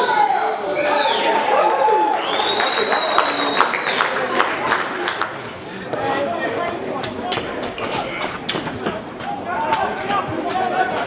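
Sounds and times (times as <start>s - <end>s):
players and spectators shouting: 0.0s - 2.2s.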